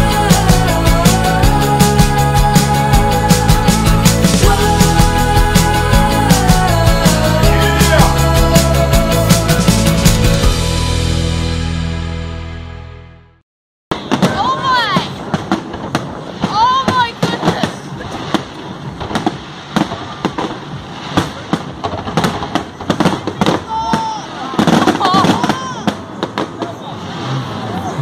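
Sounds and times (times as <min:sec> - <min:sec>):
fireworks bangs and crackles: 0:13.9 - 0:28.0
people calling out: 0:23.6 - 0:26.0.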